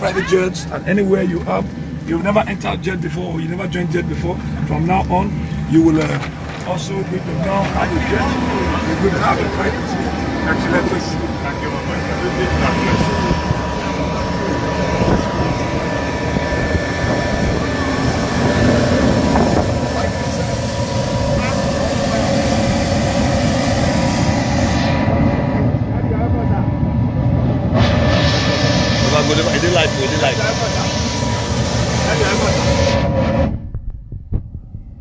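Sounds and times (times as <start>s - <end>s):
high turbine whine: 0.0s - 35.0s
jet turbine idling: 0.0s - 35.0s.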